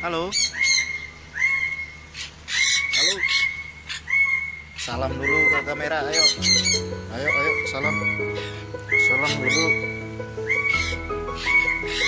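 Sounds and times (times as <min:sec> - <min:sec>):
cockatoo screeching: 0:00.2 - 0:12.0.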